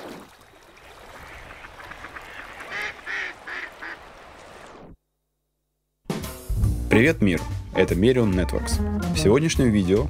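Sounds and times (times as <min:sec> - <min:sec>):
water wash: 0:00.0 - 0:04.9
duck quacking: 0:01.6 - 0:04.0.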